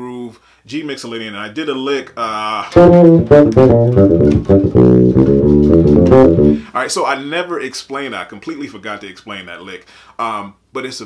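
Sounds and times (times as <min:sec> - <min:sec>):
electric bass plucked run: 0:02.8 - 0:06.7.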